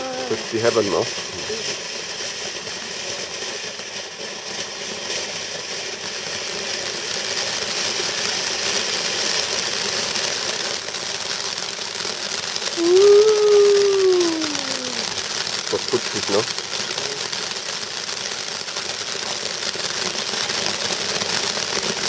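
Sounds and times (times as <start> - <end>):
firework fountain hissing and crackling: 0.0 - 22.0.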